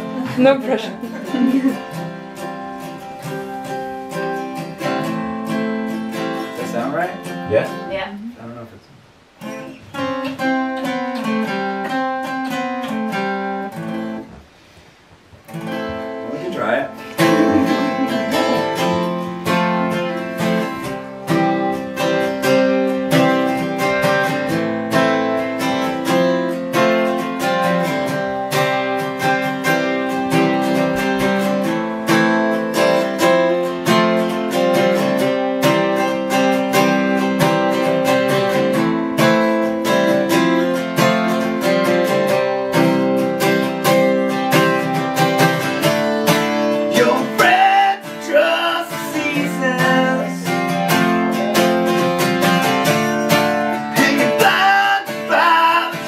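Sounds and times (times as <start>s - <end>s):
acoustic guitar picking and strumming: 0.0s - 56.0s.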